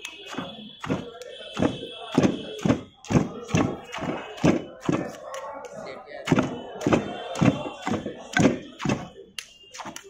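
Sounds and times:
pestle pounding in metal mortar: 0.3 - 5.3, 6.2 - 9.1.

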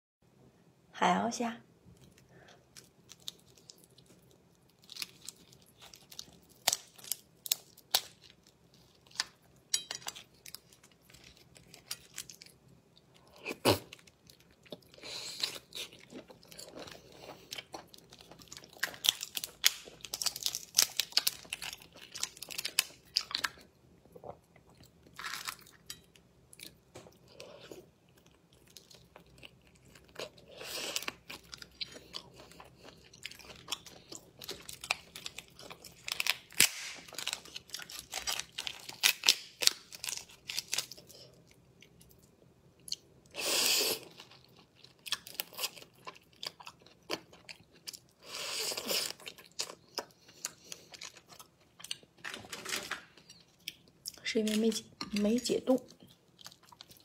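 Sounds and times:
shells crackling and snapping: 5.9 - 8.4, 18.8 - 21.7, 36.0 - 41.0.

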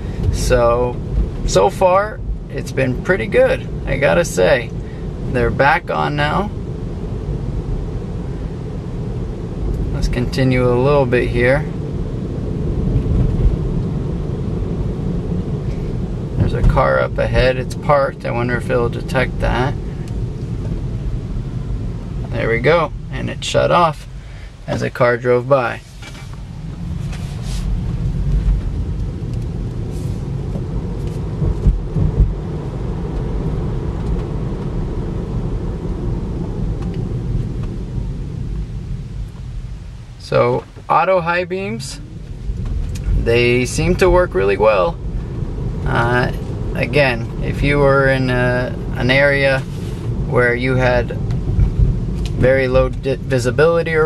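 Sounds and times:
road and tyre noise in car: 0.0 - 54.0
short thumps: 31.4 - 32.4.

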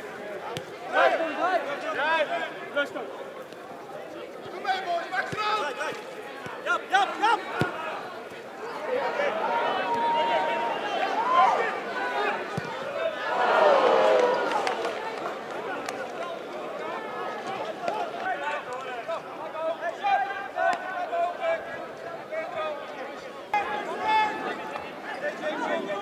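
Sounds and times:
players and spectators calling out: 0.0 - 26.0
ball being kicked: 12.5 - 12.8.

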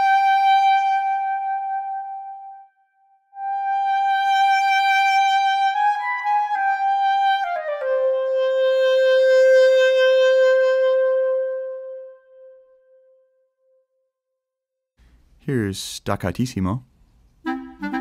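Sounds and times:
solo clarinet playing: 0.0 - 13.1, 17.4 - 18.0.

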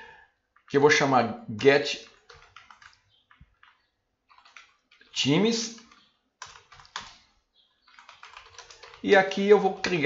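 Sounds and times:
computer keyboard typing: 1.6 - 10.0.

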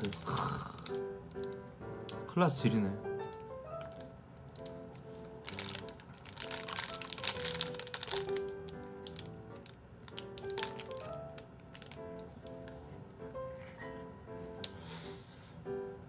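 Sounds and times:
cookie crunching: 0.0 - 1.5, 3.8 - 12.7
plastic wrapper crinkling: 0.0 - 2.2, 3.2 - 12.8
soft background music: 0.0 - 16.0.

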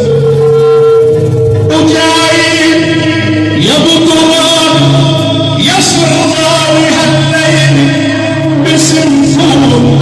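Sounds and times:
amplified band music: 0.0 - 10.0
man singing: 0.0 - 10.0.

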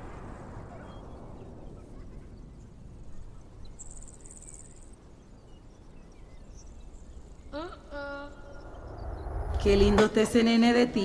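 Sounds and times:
high pulsing insect trill: 3.7 - 10.0
steady low rumble: 4.9 - 10.8.

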